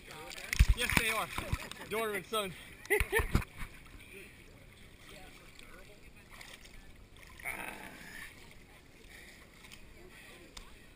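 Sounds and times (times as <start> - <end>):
pool water lapping: 0.0 - 10.9
rush of water: 0.0 - 10.9.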